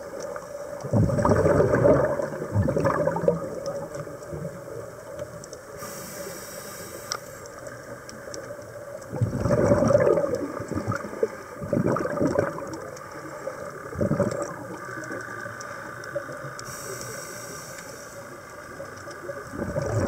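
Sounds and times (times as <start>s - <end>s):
exhaled bubbles gurgling: 0.0s - 20.0s
diver breathing through regulator: 5.8s - 7.5s, 16.6s - 18.3s.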